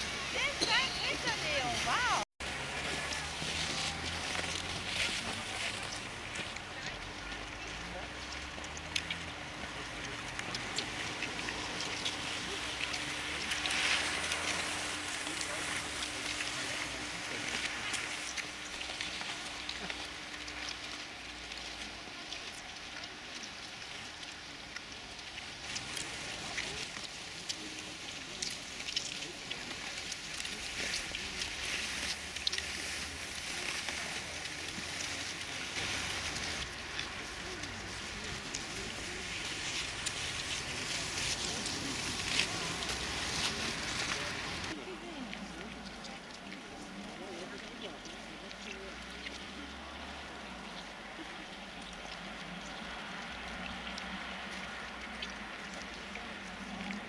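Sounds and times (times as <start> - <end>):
indistinct voices: 0.0 - 57.0.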